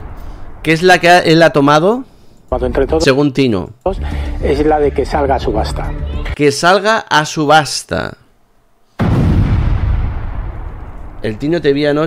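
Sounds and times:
explosion deep boom: 0.0 - 0.8, 9.0 - 11.6.

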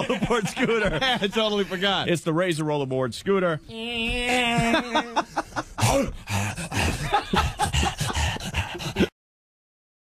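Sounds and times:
men laughing: 0.0 - 2.1, 4.1 - 9.1.

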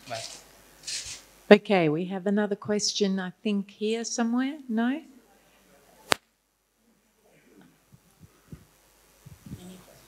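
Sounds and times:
faint room noise: 0.0 - 10.0.

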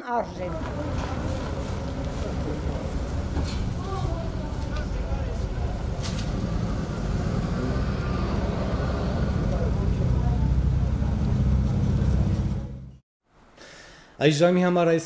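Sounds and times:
people talking in background: 0.0 - 12.8.

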